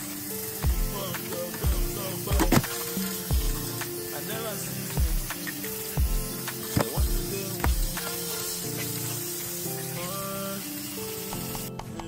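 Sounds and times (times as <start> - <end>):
tap water running into sink: 0.0 - 11.8
background music: 0.0 - 12.0.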